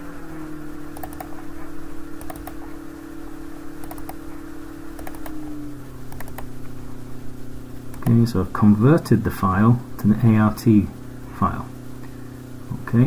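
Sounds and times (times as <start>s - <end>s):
low electrical hum: 0.0s - 13.0s
computer mouse clicking: 0.9s - 1.4s, 2.2s - 2.6s, 3.8s - 4.2s, 5.0s - 5.4s, 6.1s - 6.5s, 7.9s - 8.2s.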